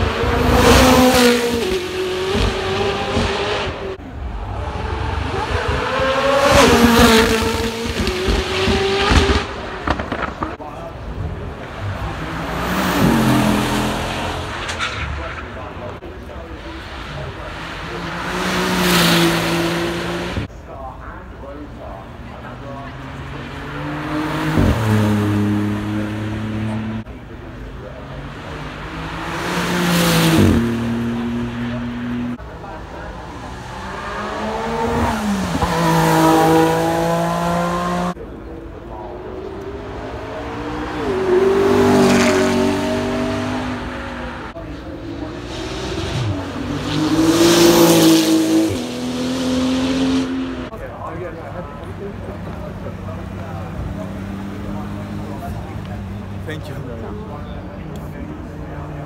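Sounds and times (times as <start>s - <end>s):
cars accelerating past: 0.0s - 20.5s, 21.4s - 59.0s.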